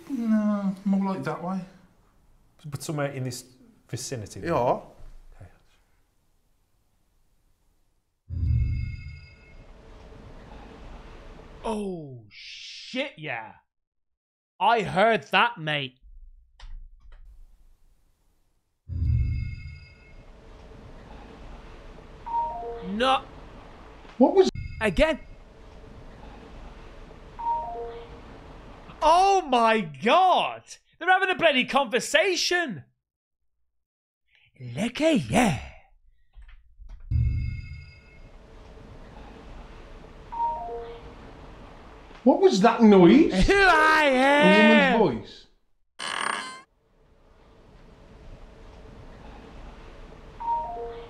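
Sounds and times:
low background hum: 0:19.8 - 0:29.8, 0:38.0 - 0:45.2, 0:46.9 - 0:51.0.

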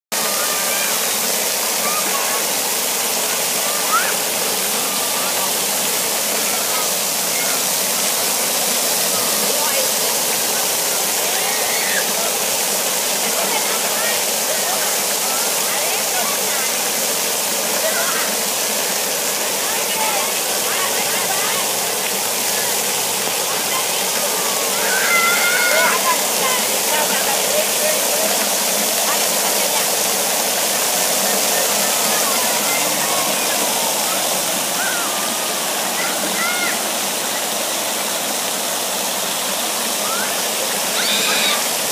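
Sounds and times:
children's voices and shouts: 0:00.1 - 0:30.2, 0:31.1 - 0:38.4, 0:39.8 - 0:41.9
hiss of falling water: 0:00.1 - 0:41.9
high child's call: 0:00.2 - 0:01.2, 0:01.8 - 0:02.5, 0:03.6 - 0:05.6, 0:06.4 - 0:07.8, 0:11.2 - 0:12.3, 0:23.5 - 0:26.7, 0:31.7 - 0:37.4, 0:40.0 - 0:41.8.

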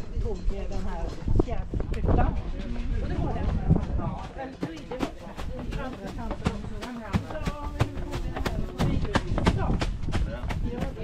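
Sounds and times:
people's voices: 0:00.0 - 0:11.0
steady knocking beat: 0:04.2 - 0:11.0.

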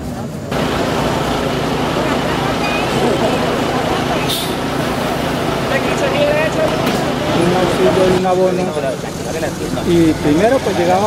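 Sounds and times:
bus engine running: 0:00.0 - 0:11.0
crowd chatter: 0:00.0 - 0:11.0
brief hiss: 0:04.2 - 0:05.1.

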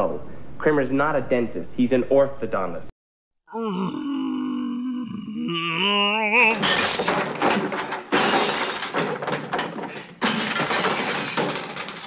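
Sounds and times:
clatter of smashing objects: 0:06.5 - 0:12.0
glass shattering: 0:06.5 - 0:12.0.

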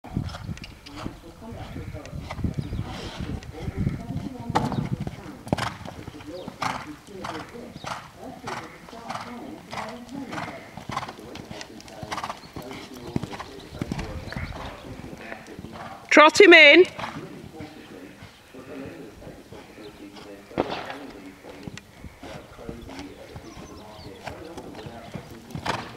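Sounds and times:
horse hoofbeats on sand: 0:00.1 - 0:16.1, 0:16.8 - 0:25.9.

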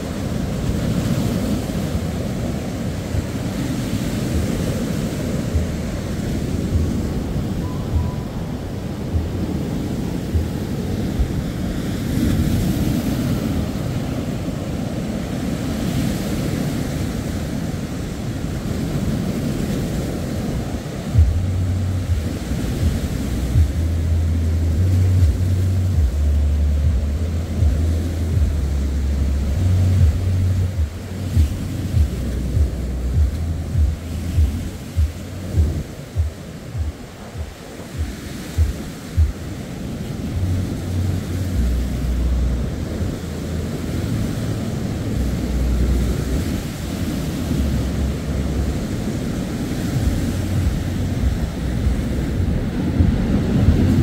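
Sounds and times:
wind buffeting the microphone: 0:00.0 - 0:54.0.

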